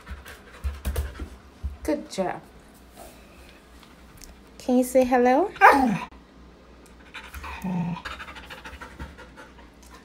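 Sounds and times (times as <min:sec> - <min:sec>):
dog panting rapidly: 0:07.1 - 0:10.0.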